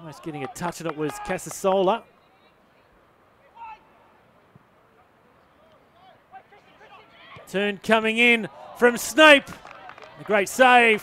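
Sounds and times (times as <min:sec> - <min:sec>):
distant shouts of footballers: 0:00.0 - 0:01.6, 0:03.4 - 0:04.2, 0:05.5 - 0:11.0.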